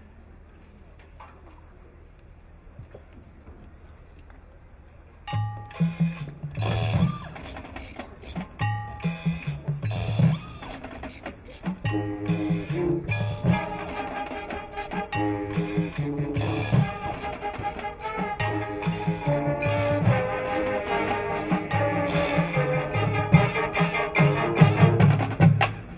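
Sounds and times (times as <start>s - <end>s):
wind instruments holding chords: 5.4s - 25.9s.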